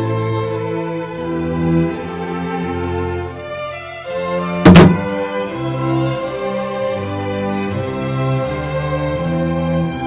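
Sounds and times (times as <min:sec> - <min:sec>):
sad bowed-string music: 0:00.0 - 0:10.0
loud sudden thunk: 0:04.6 - 0:05.2.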